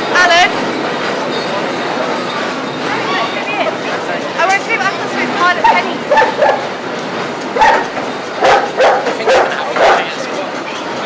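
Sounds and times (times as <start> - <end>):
crowd chatter: 0.0 - 11.0
dog barking: 6.1 - 6.6, 7.6 - 10.2.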